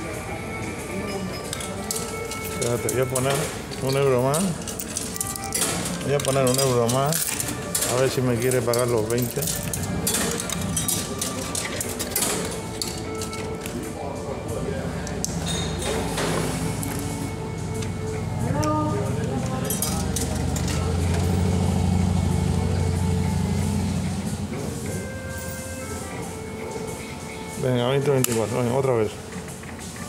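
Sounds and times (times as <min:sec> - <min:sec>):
slot machine electronic music: 0:00.0 - 0:23.6.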